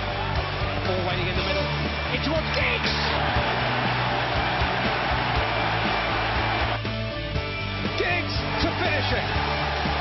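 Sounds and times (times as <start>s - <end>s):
stadium crowd roaring: 0.0s - 7.0s, 7.9s - 10.0s
background music with bass: 0.0s - 10.0s.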